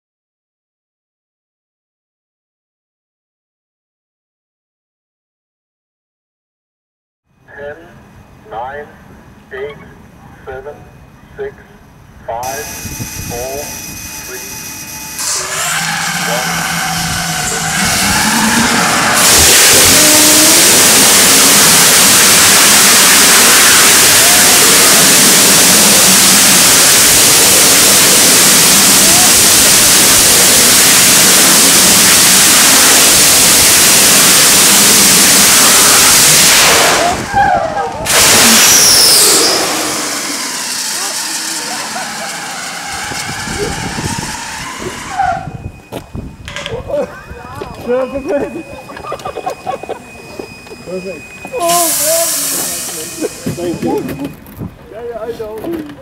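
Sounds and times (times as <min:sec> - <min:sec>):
rocket engine roaring: 0:12.4 - 0:54.3
rocket engine hiss: 0:15.2 - 0:37.3, 0:38.0 - 0:45.3, 0:50.0 - 0:54.0.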